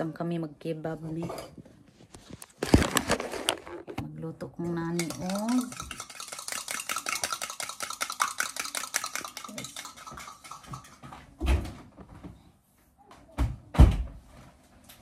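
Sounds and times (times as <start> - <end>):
spoon clinking in cup: 5.0 - 11.0.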